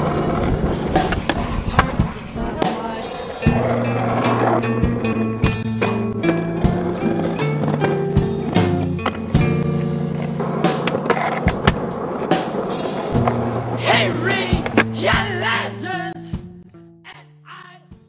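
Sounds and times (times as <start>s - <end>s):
skateboard clacking: 0.0s - 15.0s
skateboard wheels rolling on asphalt: 0.0s - 15.0s
background music with bass: 0.0s - 18.0s.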